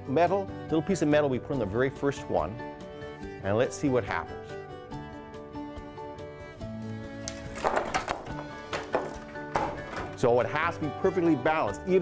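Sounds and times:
background music: 0.0s - 12.0s
wooden sticks clattering onto floor: 7.3s - 10.3s.

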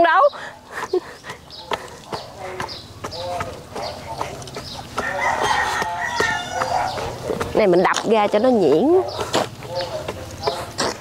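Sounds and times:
rake scraping through soil: 1.7s - 11.0s
rooster crowing: 5.0s - 7.0s.

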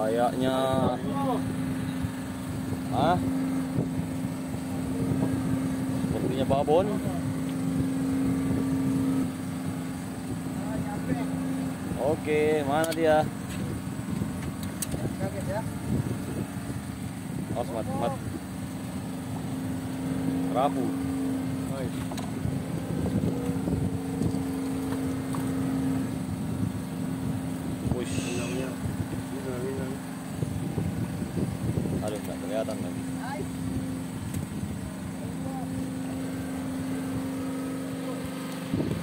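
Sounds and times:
boat motor droning: 0.0s - 39.0s.

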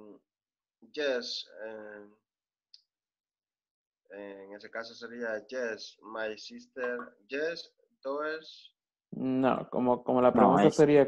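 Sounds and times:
spoken word: 1.0s - 2.1s, 4.2s - 11.0s.

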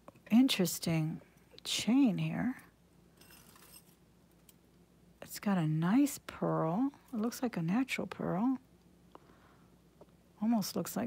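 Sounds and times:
metal bracelets jingling: 3.2s - 4.6s.

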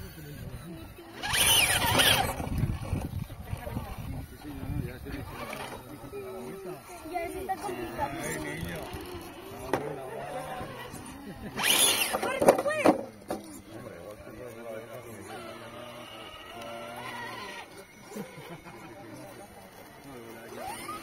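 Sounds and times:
people talking in background: 0.0s - 21.0s.

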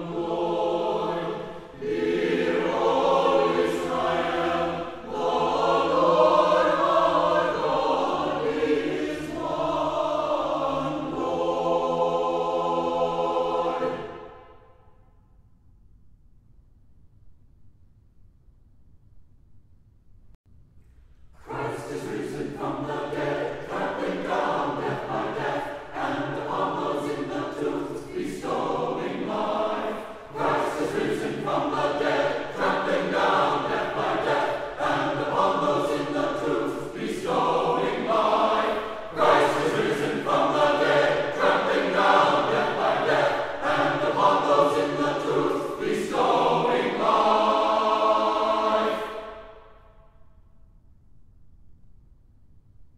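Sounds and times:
choir singing a cappella: 0.0s - 15.0s, 21.4s - 50.2s.

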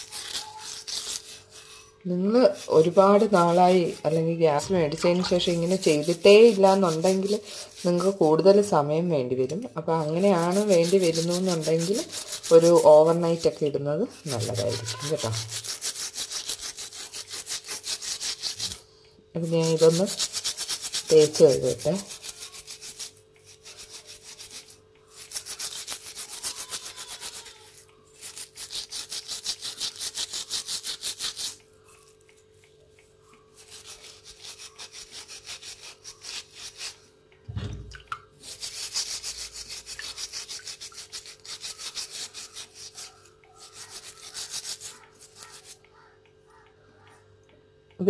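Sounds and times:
brush scrubbing metal: 0.0s - 8.9s, 9.8s - 18.8s, 19.4s - 31.7s, 33.0s - 37.0s, 38.4s - 45.8s
low thud: 37.5s - 38.1s.

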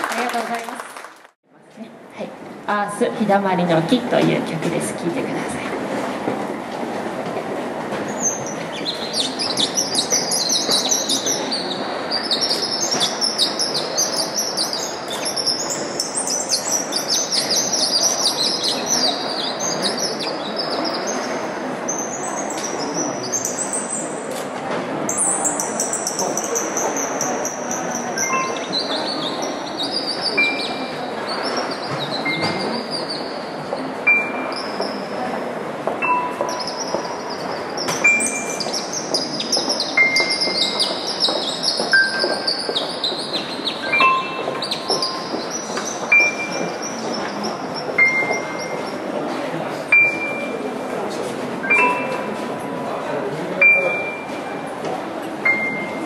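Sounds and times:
soft crowd hubbub: 1.4s - 56.0s
imitation birdsong chirps and whistles: 8.2s - 24.2s, 28.2s - 33.5s, 36.5s - 49.0s.

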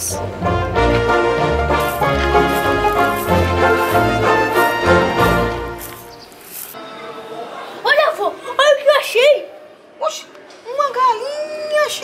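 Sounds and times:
melody of held notes: 0.2s - 6.2s.

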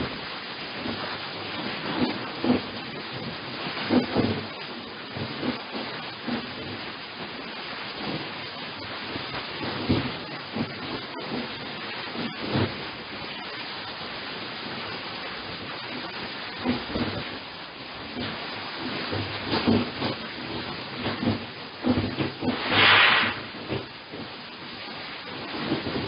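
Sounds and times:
steady hiss: 0.0s - 26.0s.

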